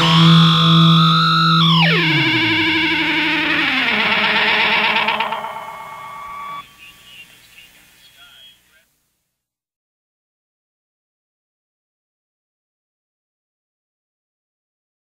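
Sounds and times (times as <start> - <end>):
rock band instrumental drone: 0.0 - 6.8.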